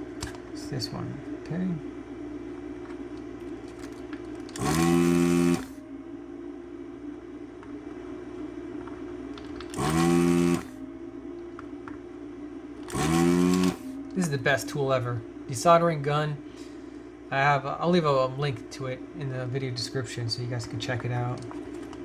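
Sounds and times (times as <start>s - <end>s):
desoldering pump motor whine: 0.0s - 22.0s
steady low hum: 0.0s - 22.0s.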